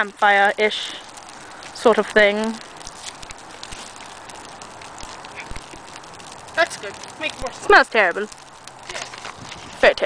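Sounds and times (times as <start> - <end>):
campfire crackling: 0.0 - 10.0
steady hiss: 0.0 - 10.0.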